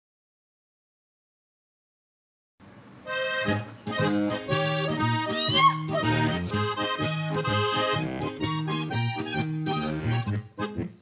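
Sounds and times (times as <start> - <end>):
accordion playing folk music: 3.1 - 11.0
bass notes: 3.2 - 11.0
strummed acoustic guitar: 3.4 - 11.0.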